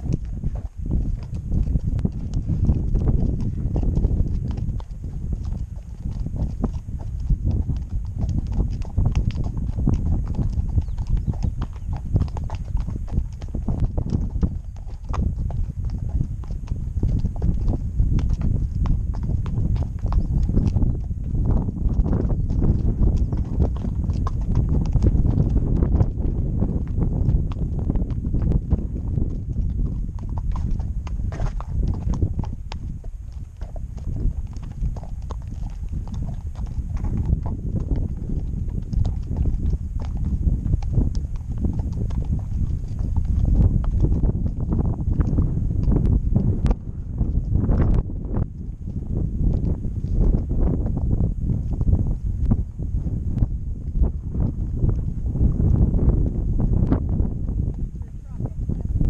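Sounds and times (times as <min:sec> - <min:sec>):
constant low rumble: 0:00.0 - 0:49.0, 0:53.4 - 0:59.0
horse hooves clopping on stony track: 0:00.0 - 0:59.0.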